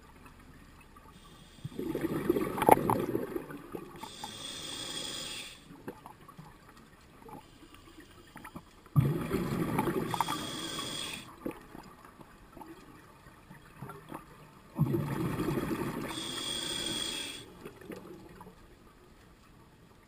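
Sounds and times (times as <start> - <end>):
diver breathing through regulator: 4.0 - 5.7, 10.0 - 11.3, 16.0 - 17.6.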